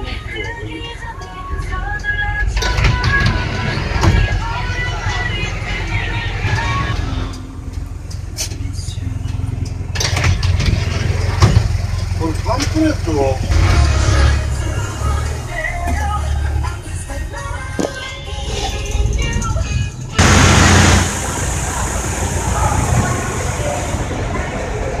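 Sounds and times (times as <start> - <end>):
music: 0.0 - 9.4, 13.8 - 20.2
voices: 0.0 - 10.0, 11.0 - 25.0
bus engine rumble: 0.0 - 25.0
road noise: 0.0 - 25.0
road noise hiss: 20.2 - 25.0
faint voices: 21.1 - 25.0.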